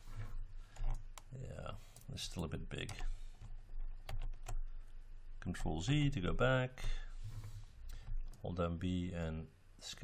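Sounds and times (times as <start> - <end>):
keyboard and mouse clicks: 2.8 - 4.6.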